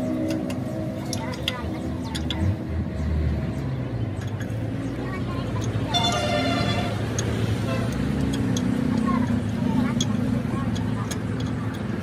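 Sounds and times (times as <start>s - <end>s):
vehicle noise: 0.0s - 12.0s
voices: 0.0s - 12.0s
screwdriver clicking on metal: 7.1s - 12.0s.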